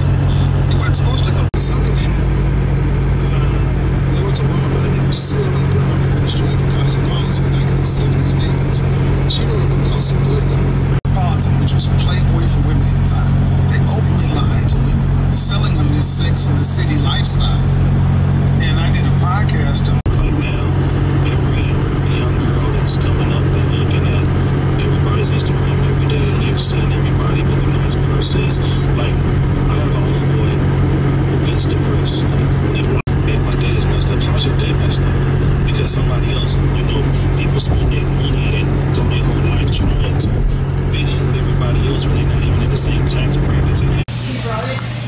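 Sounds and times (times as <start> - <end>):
car road noise drone: 0.0 - 45.0.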